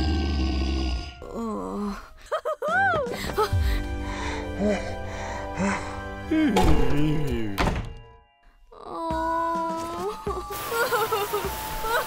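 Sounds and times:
cartoon wooden door slamming: 7.6 - 8.1.

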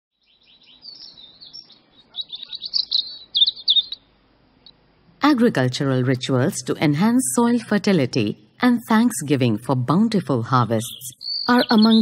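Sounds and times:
birds chirping: 0.1 - 5.0, 5.8 - 12.0.

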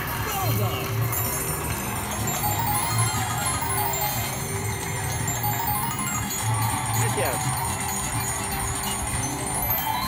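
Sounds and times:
slot machine win music: 0.0 - 10.0
bell-like chimes: 1.0 - 10.0.

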